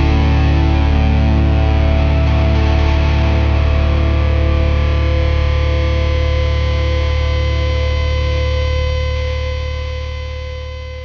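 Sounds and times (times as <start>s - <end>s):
bass guitar: 0.0s - 11.0s
distorted electric guitars: 0.0s - 11.0s.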